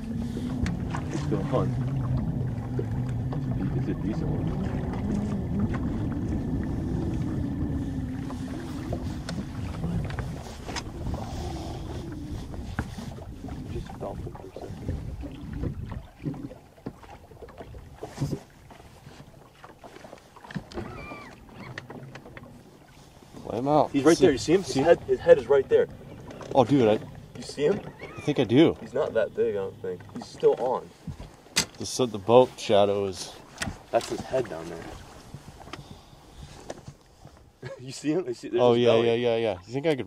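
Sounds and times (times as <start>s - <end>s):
low steady hum: 0.0s - 18.5s
water: 0.0s - 40.0s
wind: 0.0s - 40.0s.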